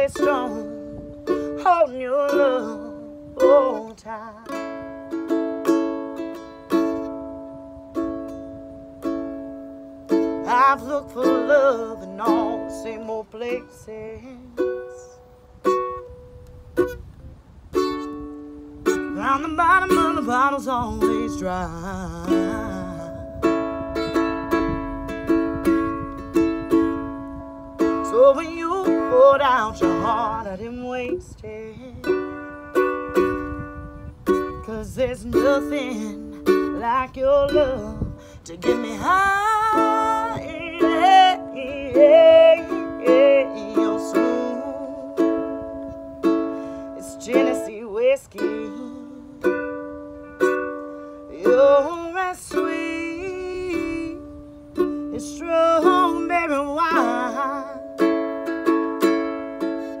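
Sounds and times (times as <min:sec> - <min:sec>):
ukulele strummed chords: 0:00.0 - 1:00.0.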